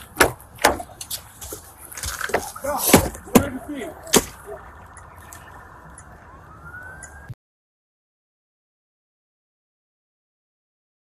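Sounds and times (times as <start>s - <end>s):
idling vehicles rumble: 0.0s - 7.3s
police siren winding up: 6.0s - 7.4s.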